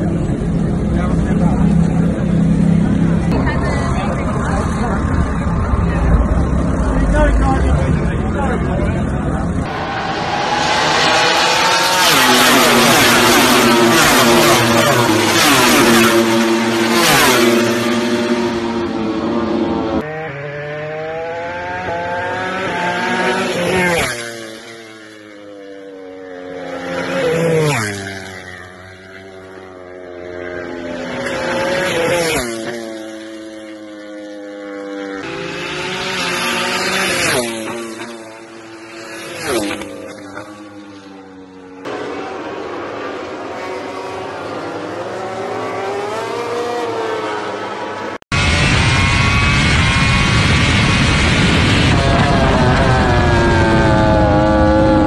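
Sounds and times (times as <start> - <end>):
racing motorcycles passing: 0.0 - 55.0.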